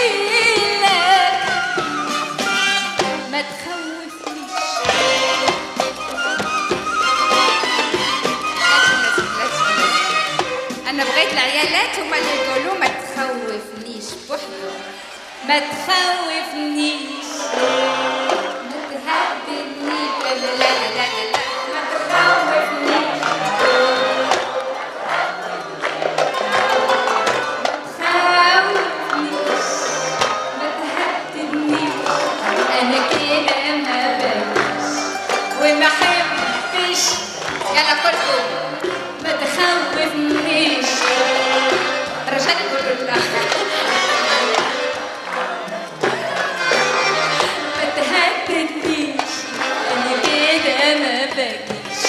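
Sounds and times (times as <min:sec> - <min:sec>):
crowd cheering: 0:00.0 - 0:13.5, 0:14.6 - 0:52.0
percussion hits: 0:00.0 - 0:14.4, 0:17.2 - 0:52.0
live orchestra music: 0:00.0 - 0:52.0.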